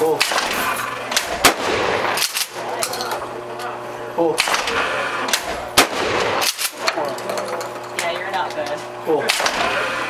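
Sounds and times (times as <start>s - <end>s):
shotgun firing: 0.1s - 2.6s, 4.4s - 7.0s, 9.2s - 9.9s.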